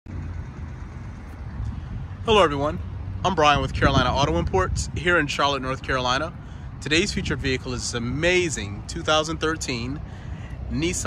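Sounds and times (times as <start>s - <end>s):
car engine idling: 0.1s - 4.5s.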